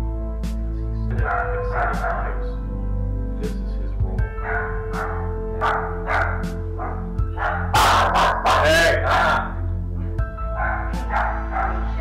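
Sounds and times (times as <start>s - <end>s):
background music: 0.0s - 12.0s
small dog barking: 1.2s - 2.3s, 4.4s - 9.4s, 10.6s - 11.9s.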